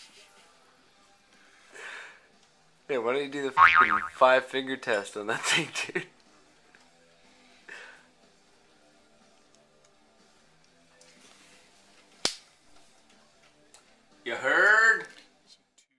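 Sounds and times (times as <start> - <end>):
faint background music: 0.0 - 15.9.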